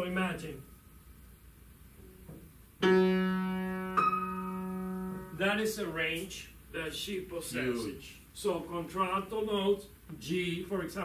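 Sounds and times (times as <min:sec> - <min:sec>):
piano notes ringing: 0:02.8 - 0:05.4.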